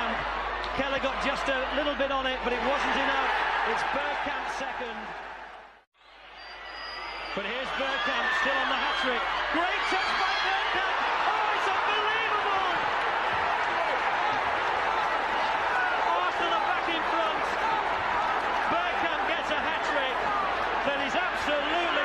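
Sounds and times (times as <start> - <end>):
stadium crowd roar: 0.0 - 22.0.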